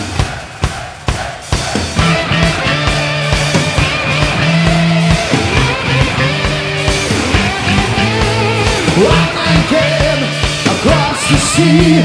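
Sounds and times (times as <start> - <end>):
heavy metal drum beat: 0.0 - 12.0.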